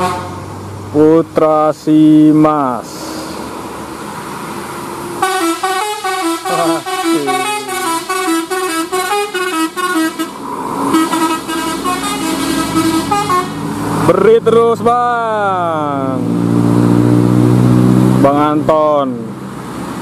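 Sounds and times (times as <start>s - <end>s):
musical bus horn tune: 0.0s - 0.4s, 5.2s - 13.6s.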